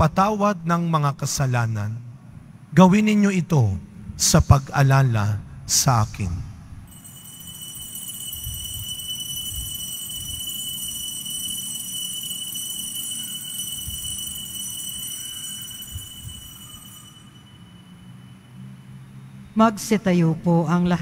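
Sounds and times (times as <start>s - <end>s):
altar bells ringing: 6.9s - 19.4s.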